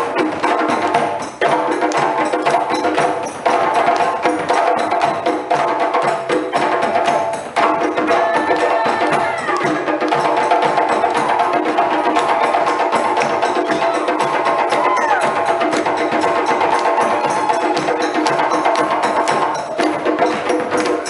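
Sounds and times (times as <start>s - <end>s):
drum ensemble fast rhythm: 0.0s - 21.0s.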